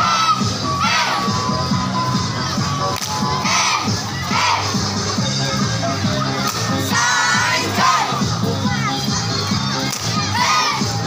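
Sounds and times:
music over loudspeakers: 0.0s - 11.0s
young voices shouting and cheering: 0.0s - 11.0s.

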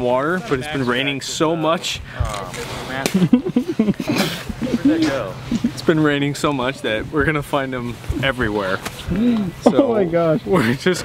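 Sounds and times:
people talking: 0.0s - 11.0s
people laughing: 2.9s - 6.1s, 9.2s - 11.0s.

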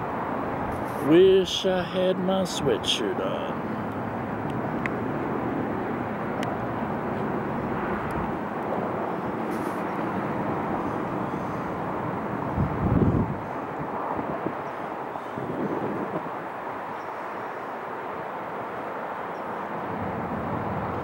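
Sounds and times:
distant traffic rumble: 0.0s - 21.0s.

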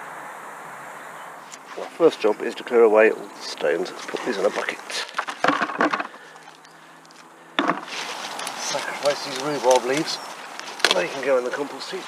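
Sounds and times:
stones clattering into a bucket: 4.0s - 6.6s, 7.6s - 10.0s.

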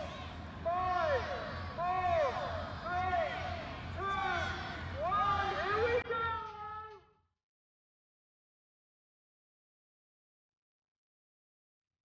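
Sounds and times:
faint crowd background: 0.0s - 7.2s.

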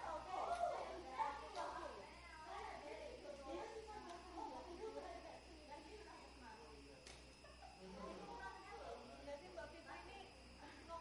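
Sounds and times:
faint indistinct speech: 0.0s - 11.0s.

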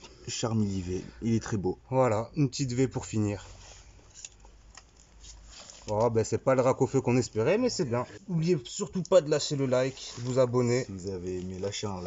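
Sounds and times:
card rustling with soft ticks: 9.0s - 12.0s.

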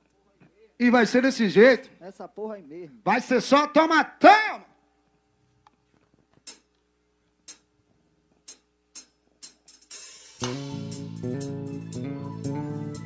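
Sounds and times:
person shouting: 3.8s - 4.7s
drum stick ticks: 6.4s - 6.8s, 7.4s - 7.7s, 8.4s - 10.6s
live band playing: 9.9s - 13.0s.

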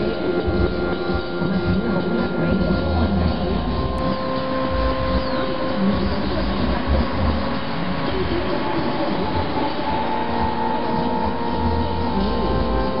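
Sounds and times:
sustained tones: 0.0s - 13.0s.

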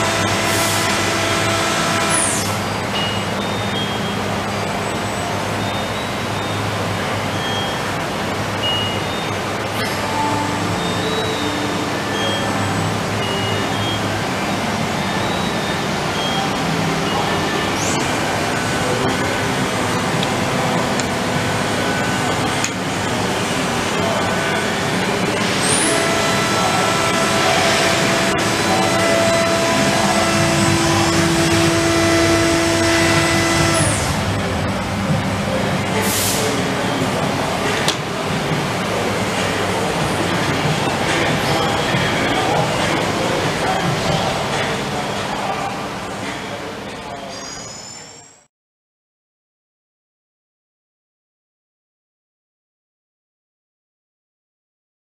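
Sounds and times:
short high machine tones: 0.0s - 34.7s, 47.2s - 48.5s
machinery running hum: 0.0s - 47.3s
loud hiss: 17.4s - 36.8s.

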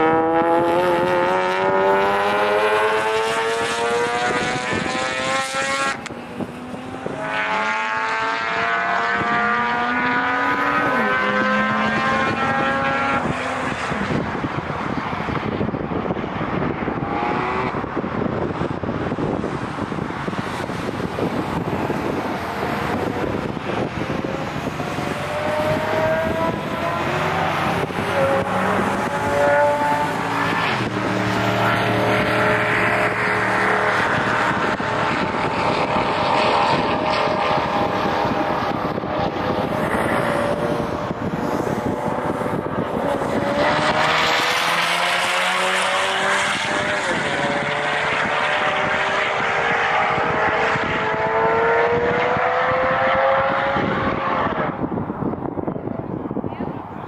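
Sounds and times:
car engines revving hard: 0.0s - 57.0s.

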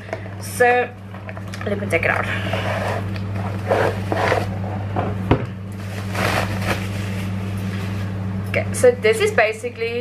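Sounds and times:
steady low hum: 0.0s - 10.0s
packaging rustling: 5.8s - 7.4s.

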